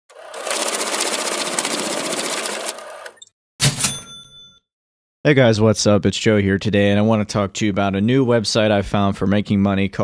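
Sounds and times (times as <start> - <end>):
fast mechanical rattle: 0.1 - 3.2
bright ringing ding: 3.6 - 4.7.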